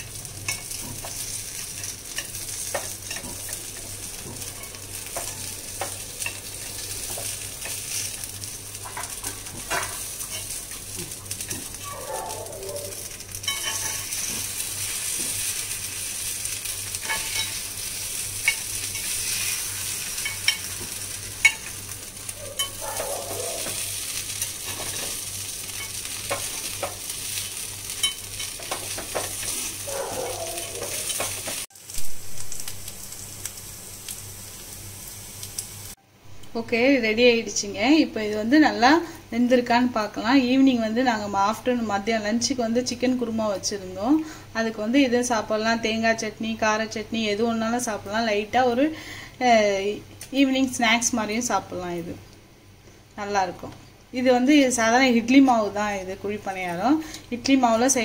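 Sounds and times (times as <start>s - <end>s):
batter sizzling in oil: 0.0s - 58.0s.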